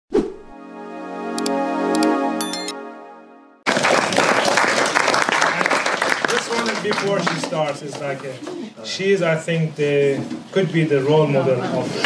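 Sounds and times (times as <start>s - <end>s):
sustained synth chord: 0.5s - 3.6s
mouse click effects: 1.4s - 2.7s.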